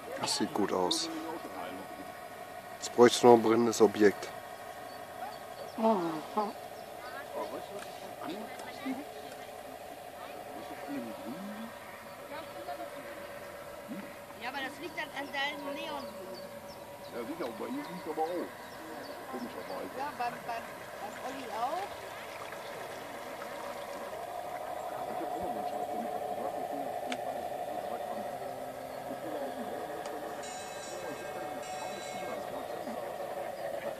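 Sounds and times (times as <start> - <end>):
indistinct voices: 0.0 - 33.9
model boat motor whine: 0.0 - 33.9
steady hum: 0.0 - 33.9.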